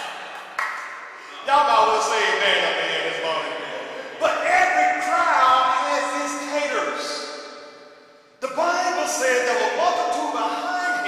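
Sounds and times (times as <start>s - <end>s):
man preaching: 1.2s - 7.7s, 8.4s - 11.0s.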